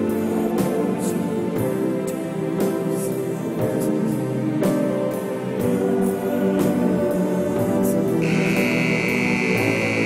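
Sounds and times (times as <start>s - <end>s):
background music: 0.0s - 10.0s
arena buzzer steady tone: 8.2s - 10.0s.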